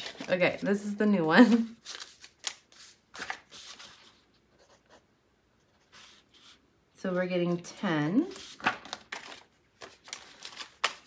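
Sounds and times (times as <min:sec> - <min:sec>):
paper banknotes rustling: 0:00.0 - 0:04.2, 0:08.3 - 0:11.0.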